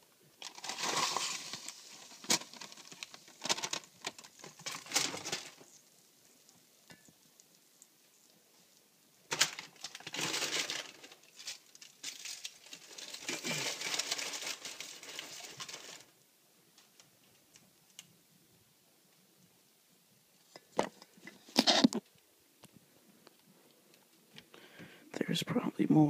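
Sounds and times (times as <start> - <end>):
paper bag crinkling: 0.4 - 5.8, 9.3 - 16.1.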